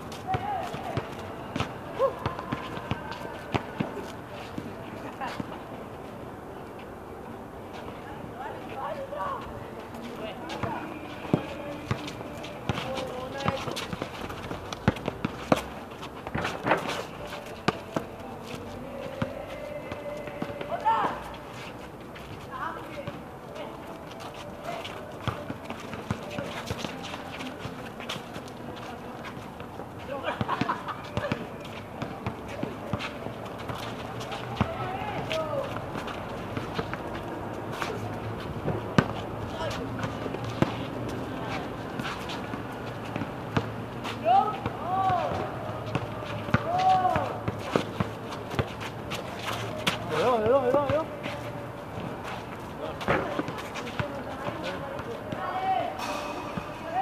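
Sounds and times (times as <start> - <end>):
players talking and shouting: 0.0 - 5.8, 7.8 - 21.7, 22.4 - 57.0
footsteps on concrete court: 0.0 - 57.0
basketball bouncing on concrete: 10.6 - 16.8.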